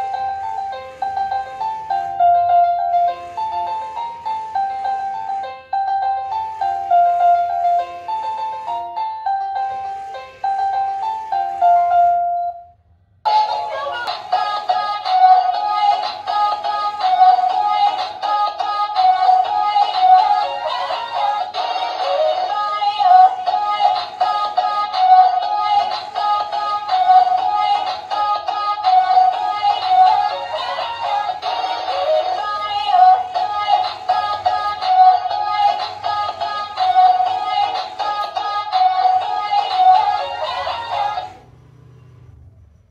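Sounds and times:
toy playing song through speaker: 0.0 - 12.7, 13.3 - 41.4.

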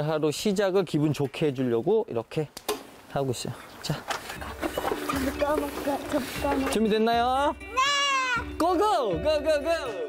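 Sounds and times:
light background music: 3.3 - 10.0.

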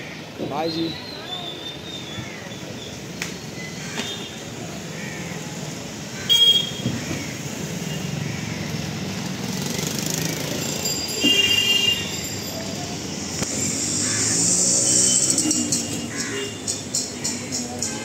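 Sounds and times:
street traffic: 0.0 - 18.0
vehicle horn honks: 6.3 - 6.9, 11.2 - 12.1.

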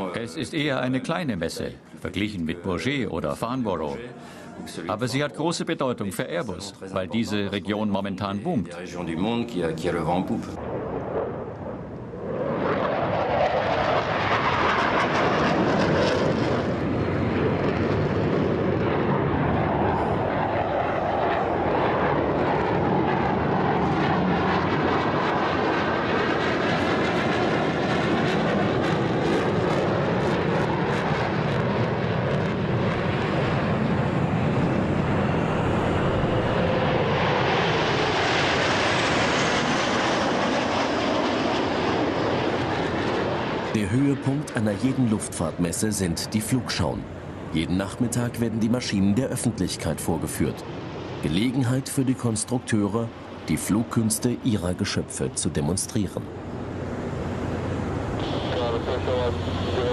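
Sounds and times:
jet aircraft engine roar: 8.8 - 59.9
jet passing whoosh: 8.9 - 54.5, 56.1 - 59.9.

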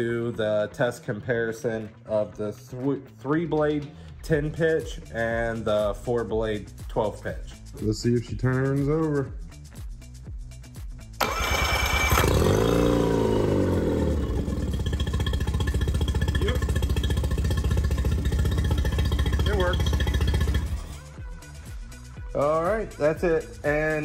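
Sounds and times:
outboard motor running: 11.2 - 20.9.

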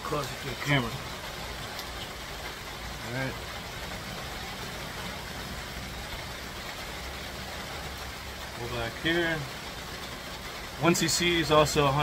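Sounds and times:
steady rain falling: 0.0 - 12.0.

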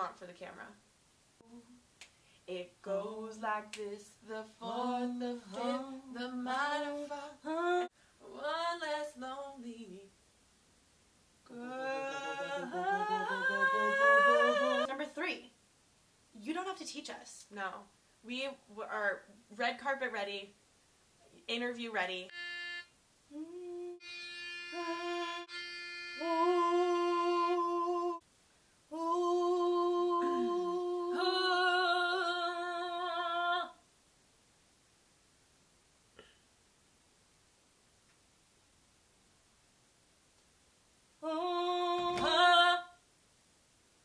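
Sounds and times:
women singing wordless harmony: 2.5 - 10.1, 11.5 - 15.4, 24.7 - 25.5, 26.2 - 28.2, 28.9 - 33.8, 41.2 - 43.0
women humming in unison: 11.5 - 14.9, 23.3 - 24.0, 24.7 - 25.5, 29.0 - 31.8
pitch pipe note: 22.3 - 22.9, 23.9 - 28.0.

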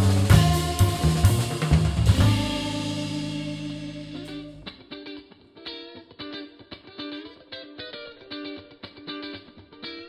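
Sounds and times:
cymbal wash: 0.0 - 4.7
upright bass: 0.0 - 4.8
electric guitar: 0.0 - 10.0
picked electric guitar notes: 0.0 - 10.0.

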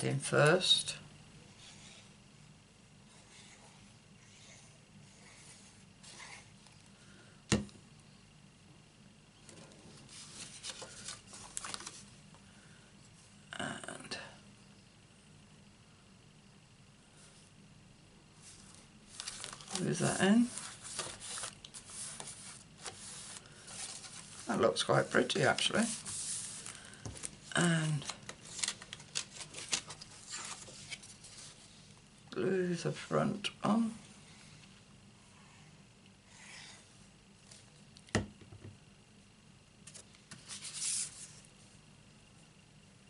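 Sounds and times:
paper rustling and scraping: 9.9 - 12.1, 18.4 - 31.8, 39.8 - 41.5
card stock rubbing and sliding: 19.1 - 27.3, 39.9 - 41.4.

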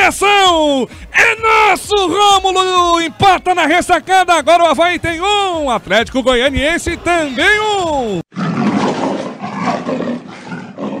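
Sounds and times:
lion roaring: 8.3 - 11.0.

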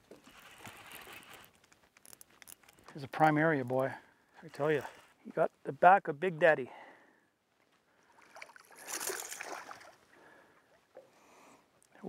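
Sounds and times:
fish splashing at the surface: 8.2 - 10.0.

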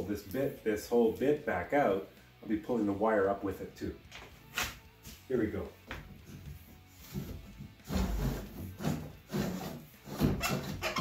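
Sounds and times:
drill bit scraping inside wall: 7.1 - 11.0.

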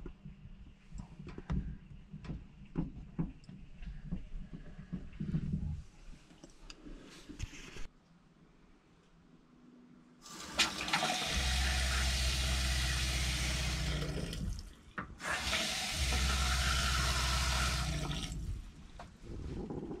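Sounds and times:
water pump humming: 10.2 - 19.0
faucet water running into sink: 10.3 - 18.6.

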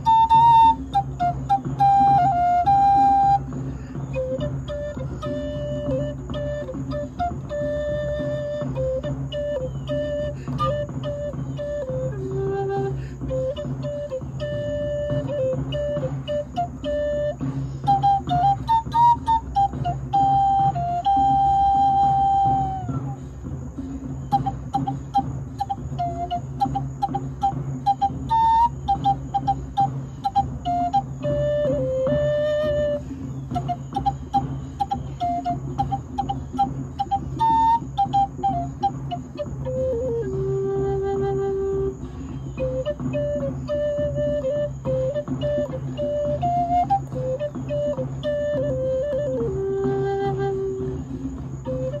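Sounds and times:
wooden flute slow melody: 0.0 - 52.0.

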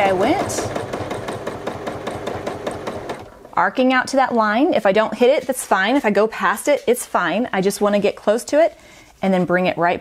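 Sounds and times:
sewing machine stitching: 0.0 - 3.6.

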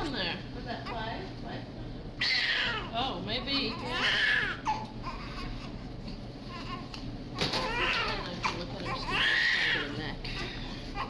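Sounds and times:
newborn baby crying: 2.2 - 3.0, 3.6 - 5.9, 6.5 - 11.0.

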